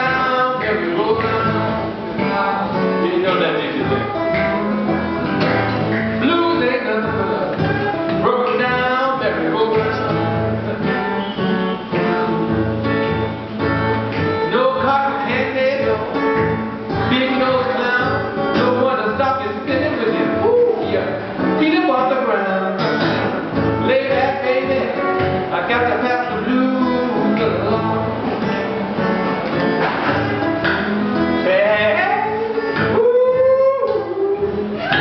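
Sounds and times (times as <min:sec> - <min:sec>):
man singing: 0:00.0 - 0:04.2, 0:06.0 - 0:11.2, 0:14.3 - 0:28.5, 0:30.0 - 0:35.0
blues acoustic guitar: 0:00.0 - 0:35.0.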